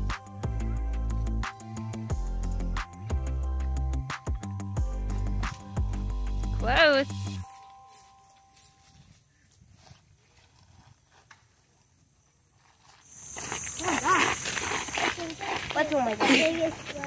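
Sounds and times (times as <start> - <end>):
people talking: 6.6 - 7.4, 13.8 - 14.4, 15.0 - 17.0.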